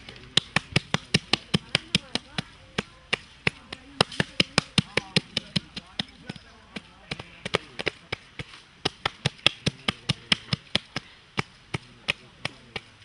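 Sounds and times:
hands slapping wet dung: 0.0s - 13.0s.

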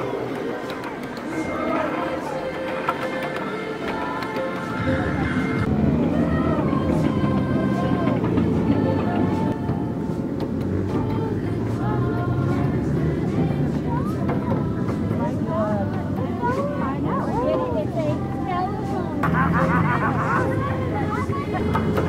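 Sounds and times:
faint voices: 0.0s - 22.0s
ride-on train rumbling: 0.0s - 22.0s.

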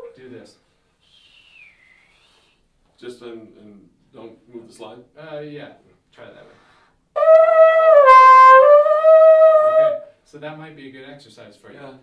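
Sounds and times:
trombone holding high note: 7.2s - 10.1s.

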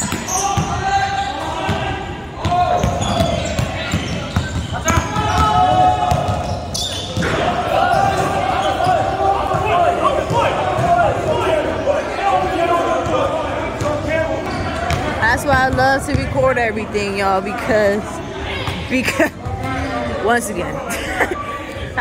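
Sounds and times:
players' voices and shouts: 0.0s - 22.0s.

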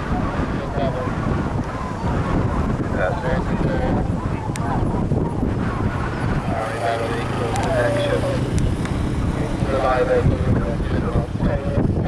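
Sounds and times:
people talking indistinctly: 0.0s - 12.0s
wind buffeting microphone: 0.0s - 12.0s.

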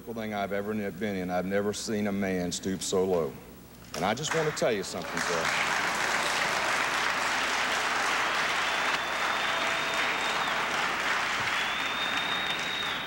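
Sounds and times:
audience applauding: 4.3s - 13.0s.

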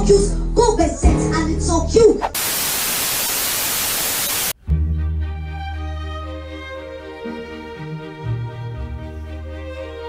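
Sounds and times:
music: 0.0s - 2.2s, 4.6s - 10.0s
loud static hiss: 2.2s - 4.6s.

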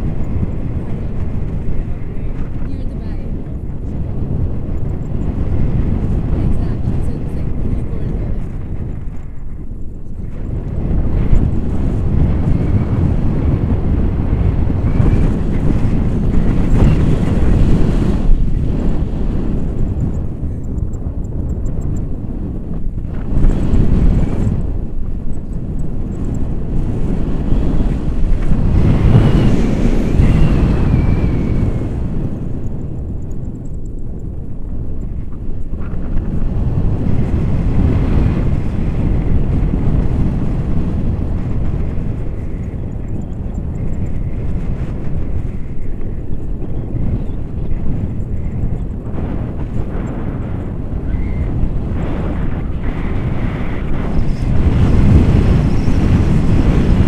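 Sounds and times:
wind rushing over microphone: 0.0s - 57.0s.

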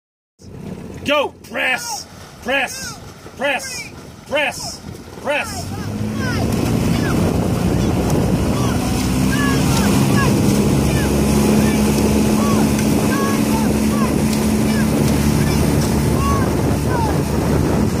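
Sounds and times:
motorboat engine running: 0.4s - 18.0s
water rushing: 0.4s - 18.0s
wind on microphone: 4.8s - 18.0s.

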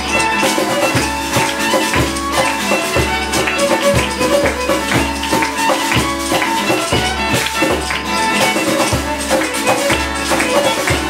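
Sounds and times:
acoustic band music: 0.0s - 11.0s
hand drum beating: 0.0s - 11.0s
violin: 0.0s - 11.0s.

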